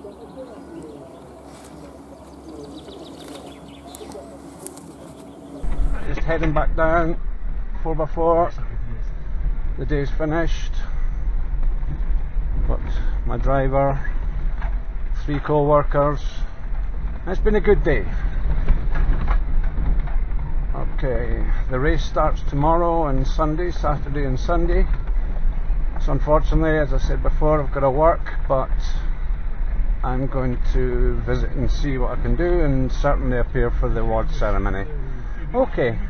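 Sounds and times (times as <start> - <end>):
birds chirping faintly: 0.0 - 6.1
engine and tyre rumble: 0.0 - 36.0.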